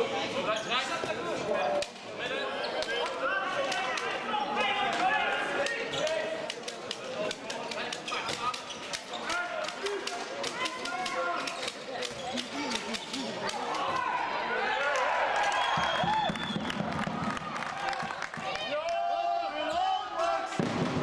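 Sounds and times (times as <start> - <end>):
people calling and talking: 0.0 - 21.0.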